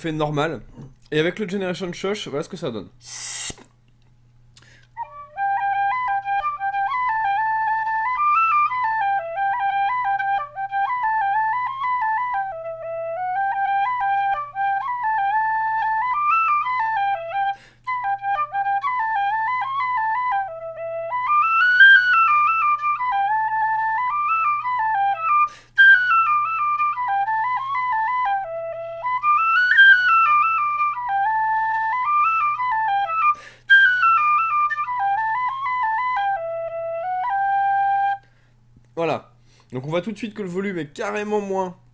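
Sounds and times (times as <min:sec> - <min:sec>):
quiet tin whistle playing tune: 0:04.6 - 0:38.5.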